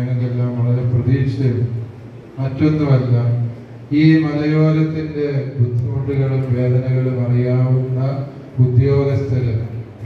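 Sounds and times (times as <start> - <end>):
man chanting in monotone: 0.0 - 10.0.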